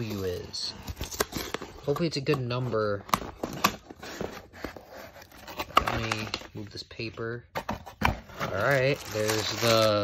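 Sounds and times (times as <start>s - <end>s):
cardboard box rustling and scraping: 0.0s - 6.2s.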